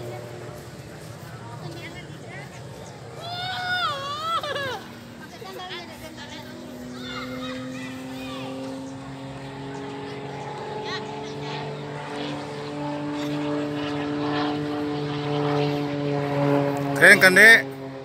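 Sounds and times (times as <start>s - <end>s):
propeller plane droning overhead: 0.0s - 18.0s.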